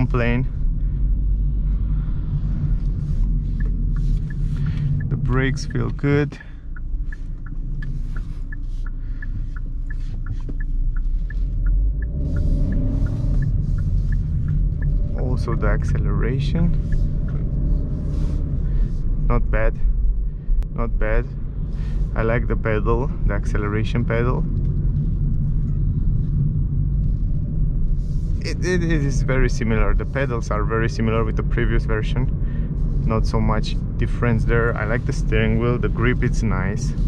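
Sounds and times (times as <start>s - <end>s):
low rumble of car driving: 0.0s - 37.0s
turn signal ticking: 0.0s - 37.0s.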